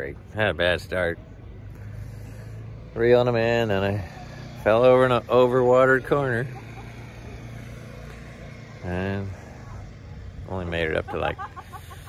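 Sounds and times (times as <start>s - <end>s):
man talking: 0.0s - 1.2s, 2.9s - 6.6s, 8.8s - 9.5s, 10.4s - 11.4s
low outdoor rumble: 0.0s - 12.0s.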